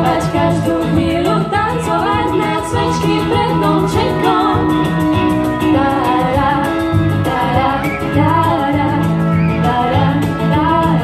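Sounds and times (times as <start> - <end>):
female lead vocal: 0.0 - 11.0
pop band playing: 0.0 - 11.0.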